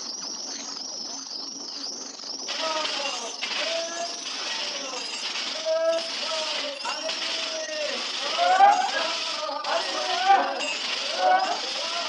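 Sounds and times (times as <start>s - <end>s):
chorus of high-pitched chirps: 0.0s - 12.0s.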